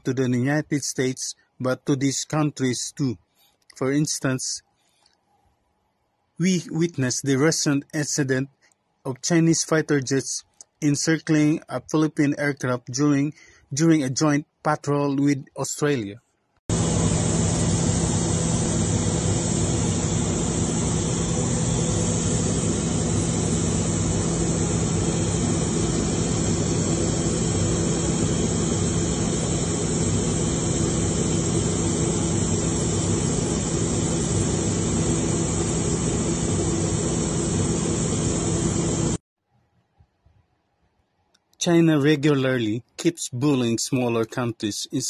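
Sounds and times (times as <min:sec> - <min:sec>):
aircraft engine drone in cabin: 0:16.7 - 0:39.2.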